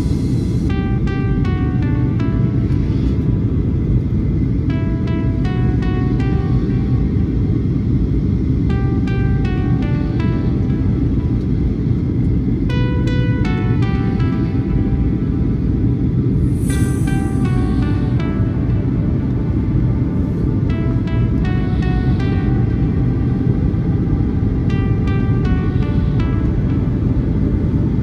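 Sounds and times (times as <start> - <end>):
music with bell-like notes: 0.0 - 28.0.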